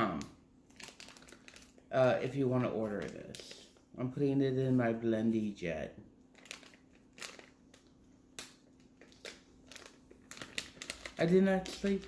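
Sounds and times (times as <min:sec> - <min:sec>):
plastic packet crinkling: 0:00.2 - 0:03.6, 0:06.3 - 0:12.0.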